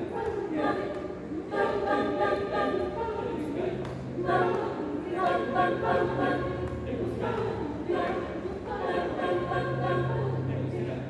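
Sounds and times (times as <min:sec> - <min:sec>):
group singing a cappella chant: 0:00.0 - 0:11.0.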